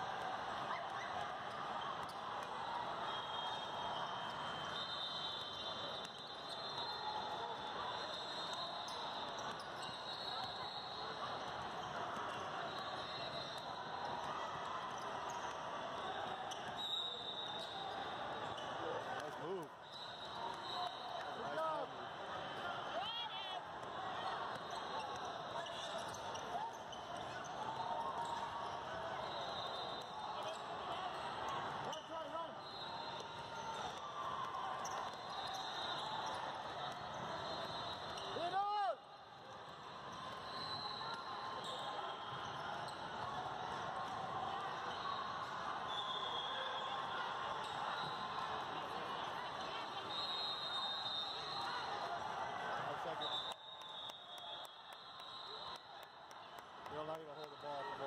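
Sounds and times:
sneaker squeaks: 0:03.1 - 0:14.2, 0:24.3 - 0:34.0, 0:34.8 - 0:38.5, 0:40.1 - 0:43.3.

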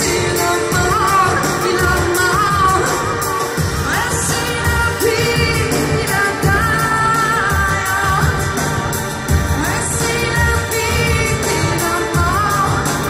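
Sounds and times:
band playing: 0:00.0 - 0:13.0
drums keeping steady beat: 0:00.0 - 0:13.0
woman singing: 0:00.0 - 0:13.0.

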